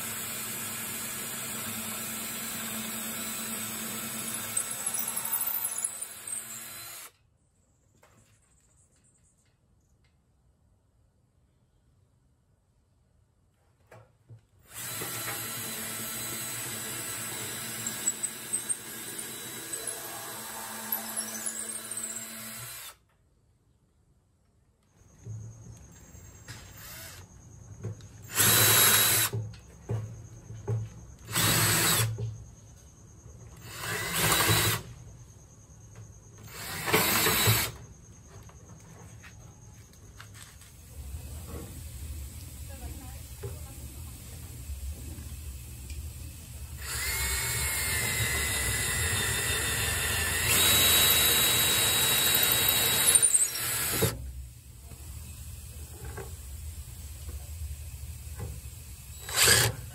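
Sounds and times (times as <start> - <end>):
cordless drill boring into wood: 0.0 - 7.1, 14.7 - 23.0, 26.7 - 27.2, 28.3 - 29.4, 31.2 - 32.2, 33.6 - 34.9, 36.4 - 37.8, 46.8 - 54.2, 59.1 - 59.9.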